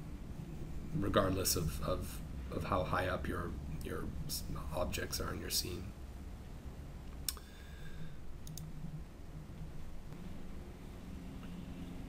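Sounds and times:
faint background noise: 0:00.0 - 0:12.0
computer mouse clicks: 0:08.4 - 0:08.7.

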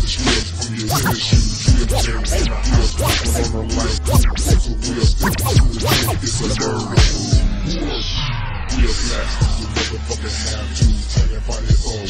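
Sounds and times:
rap music with deep bass: 0:00.6 - 0:12.0
scratch-like cut-up sounds: 0:00.9 - 0:01.2, 0:01.9 - 0:03.5, 0:04.1 - 0:04.6, 0:05.2 - 0:06.2.

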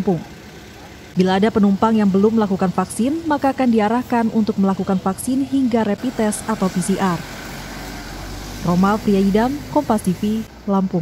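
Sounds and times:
speech: 0:00.0 - 0:00.3, 0:01.2 - 0:07.2, 0:08.6 - 0:11.0
bus engine idling: 0:00.0 - 0:11.0.

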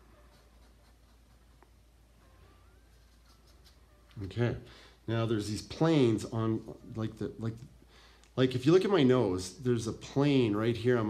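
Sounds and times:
paintbrush scratching on canvas: 0:00.0 - 0:01.9, 0:02.8 - 0:04.3.

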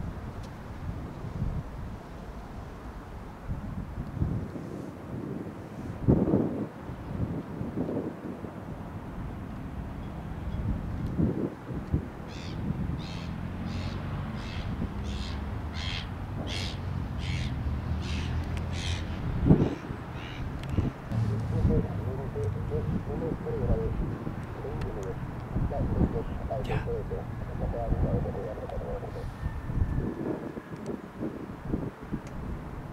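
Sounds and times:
bird calling: 0:12.3 - 0:30.0
jet engines humming: 0:18.4 - 0:29.3
low thumps: 0:21.1 - 0:24.2.

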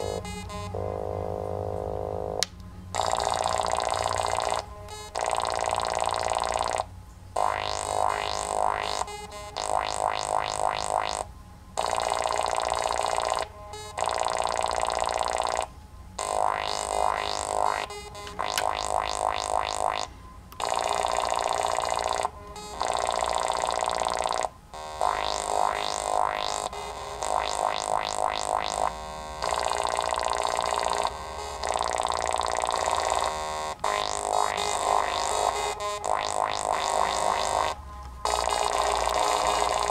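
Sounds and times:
synthesizer rising sweeps: 0:00.0 - 0:02.4, 0:33.9 - 0:39.9
held buzzy synth tones: 0:00.0 - 0:39.9.

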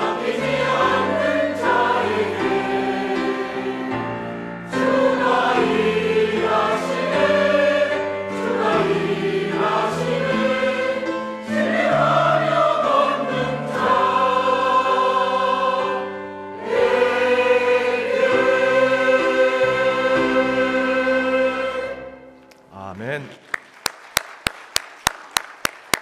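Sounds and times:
choir singing sacred anthem: 0:00.0 - 0:22.3.

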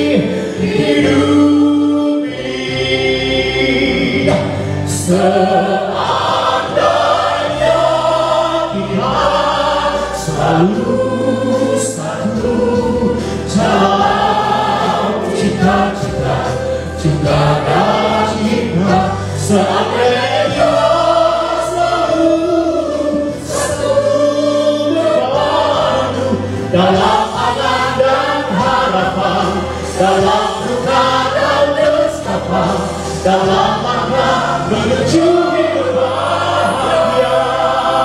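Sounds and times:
backing music: 0:00.0 - 0:38.0
group singing gospel song: 0:00.0 - 0:38.0.

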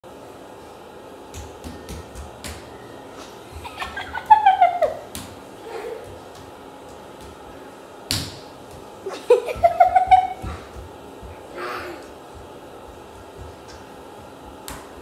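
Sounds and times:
hands and feet slapping tile floor: 0:01.2 - 0:15.0.

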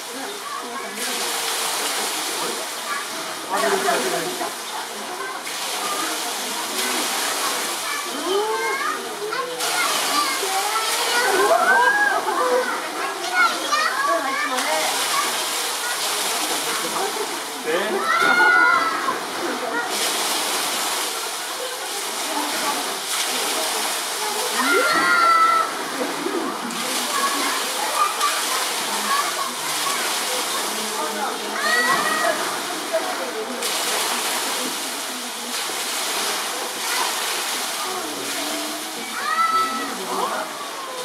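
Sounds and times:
people's voices: 0:00.0 - 0:41.0
running water rushing: 0:00.0 - 0:41.0.

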